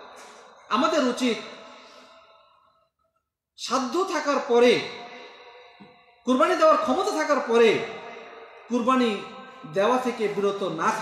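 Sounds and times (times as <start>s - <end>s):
man preaching: 0.0s - 2.5s, 3.6s - 11.0s.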